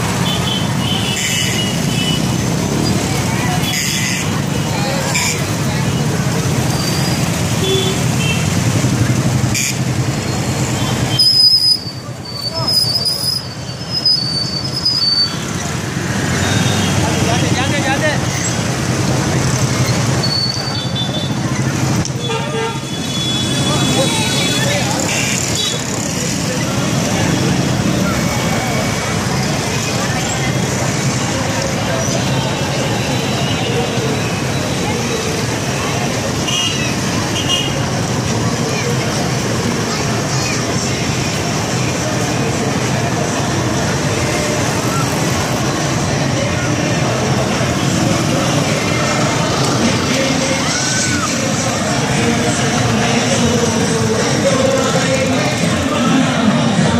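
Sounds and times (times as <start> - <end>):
motorcycles and cars running: 0.0 - 56.9
people's voices: 0.0 - 56.9
road noise: 0.0 - 56.9
car horns tooting: 22.2 - 26.0.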